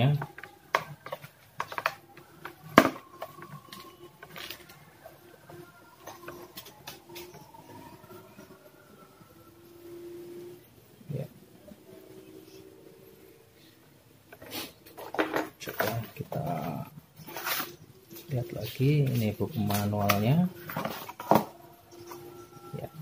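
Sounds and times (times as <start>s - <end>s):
faint whining tones: 0.0s - 23.0s.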